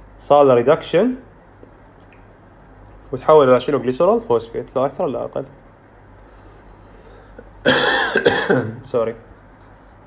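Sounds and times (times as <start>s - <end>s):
man coughing: 7.6s - 8.8s.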